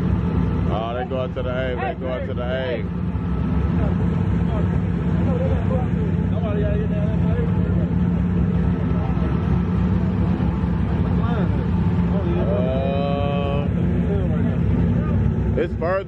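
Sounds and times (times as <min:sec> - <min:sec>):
car engines idling: 0:00.0 - 0:16.0
people talking and calling out: 0:00.0 - 0:16.0.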